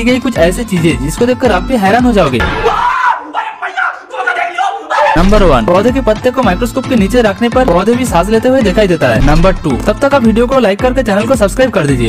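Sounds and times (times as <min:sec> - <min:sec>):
young men yelling and shouting: 0:02.4 - 0:06.1.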